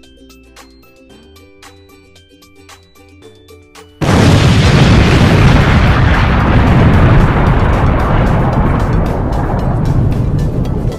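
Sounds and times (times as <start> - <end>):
music: 0.0 - 10.9
boom sound effect: 4.0 - 10.5.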